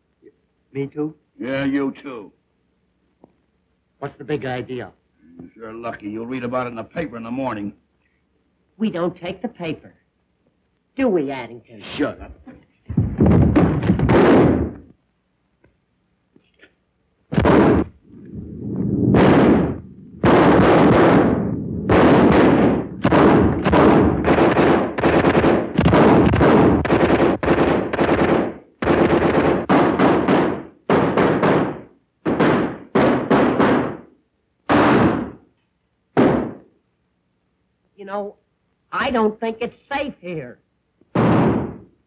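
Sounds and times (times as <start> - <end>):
gunshots: 12.9 - 14.9, 17.3 - 34.1, 34.7 - 35.4, 36.2 - 36.7, 41.1 - 41.9.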